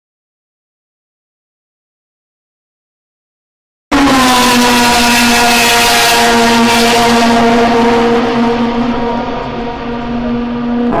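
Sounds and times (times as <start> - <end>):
racing car engine at high revs: 3.9 - 11.0.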